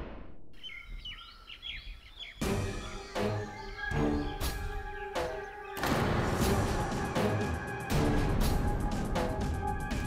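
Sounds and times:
birds chirping: 0.6s - 7.5s
dramatic background music: 2.4s - 10.0s.

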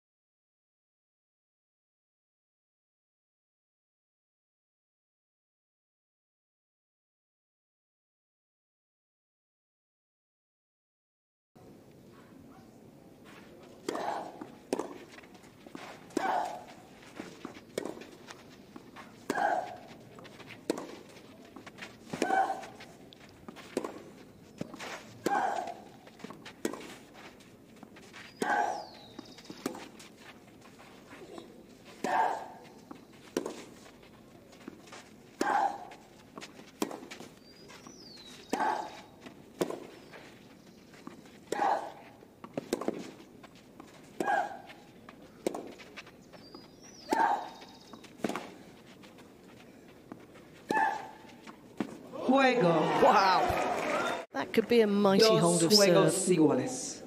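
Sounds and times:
tennis ball hits: 13.3s - 54.0s.

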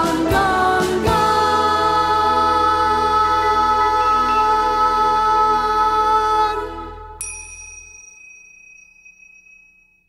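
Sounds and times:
band music and singing: 0.0s - 6.7s
tingsha cymbals ringing: 7.2s - 10.0s.

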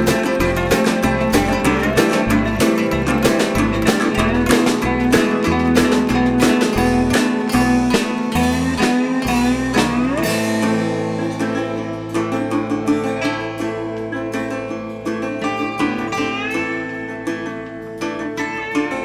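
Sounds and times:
upright bass walking notes: 0.0s - 18.8s
resonator guitar picked: 0.0s - 19.0s.

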